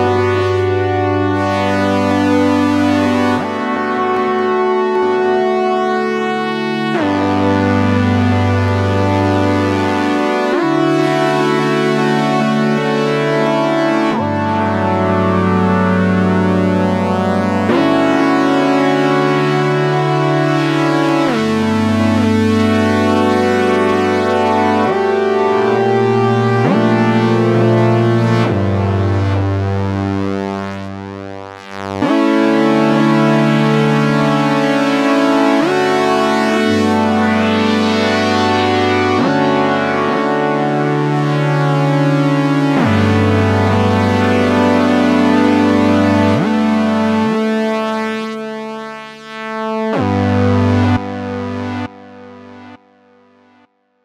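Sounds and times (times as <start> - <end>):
synthesizer chords with glide: 0.0 - 53.7.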